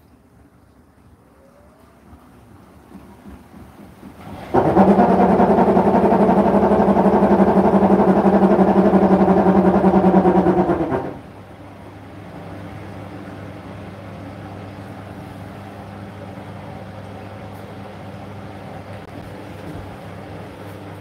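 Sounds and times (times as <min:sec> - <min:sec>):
washing machine humming: 0:00.0 - 0:21.0.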